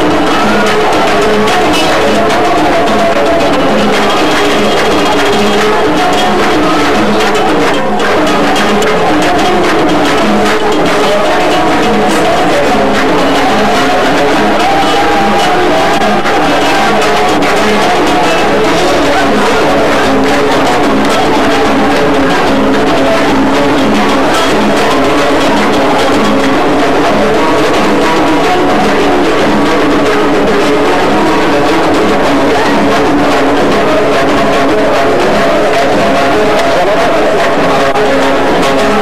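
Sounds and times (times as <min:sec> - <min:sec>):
band playing live: 0:00.0 - 0:39.0
hand drums beating: 0:00.0 - 0:39.0
plucked lute melody: 0:00.0 - 0:39.0.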